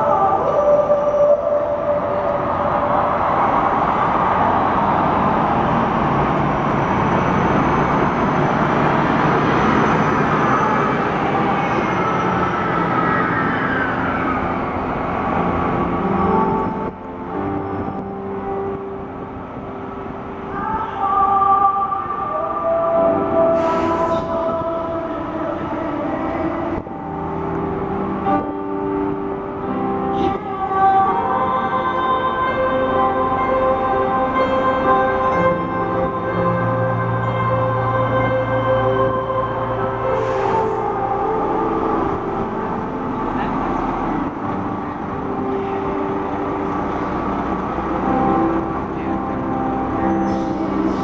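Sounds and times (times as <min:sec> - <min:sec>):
background noise: 0:00.0 - 0:51.0
live piano ballad with singing: 0:00.0 - 0:51.0.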